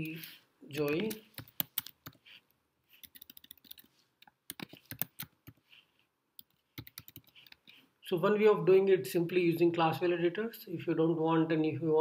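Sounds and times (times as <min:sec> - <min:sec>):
computer keyboard typing: 0:00.8 - 0:05.8, 0:06.4 - 0:07.8.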